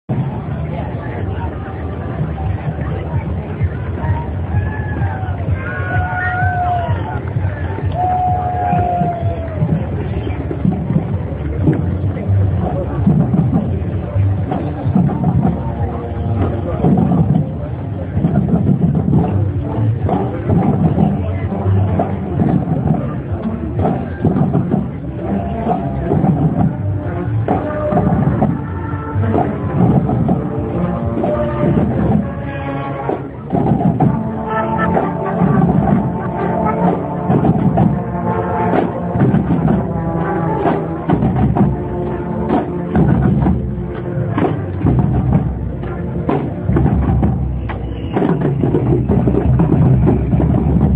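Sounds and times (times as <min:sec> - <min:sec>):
crowd voices: 0:00.0 - 0:50.9
drums beating: 0:00.1 - 0:50.9
marching band playing: 0:00.1 - 0:50.9
steady low rumble: 0:33.2 - 0:50.9.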